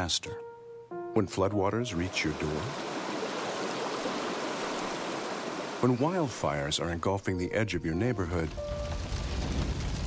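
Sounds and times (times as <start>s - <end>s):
floodwater rushing: 1.9s - 6.8s.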